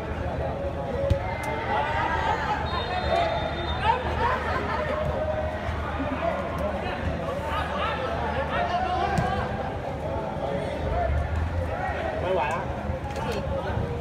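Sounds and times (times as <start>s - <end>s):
people calling out and chattering: 0.0s - 14.0s.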